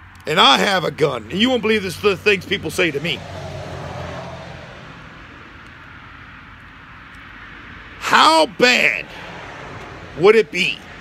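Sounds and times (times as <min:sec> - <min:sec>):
vehicle engine and road noise: 0:00.0 - 0:11.0.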